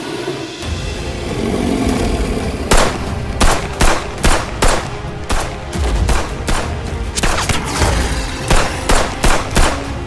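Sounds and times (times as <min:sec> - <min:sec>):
sharp gunshots: 0:02.7 - 0:07.8, 0:08.4 - 0:10.0.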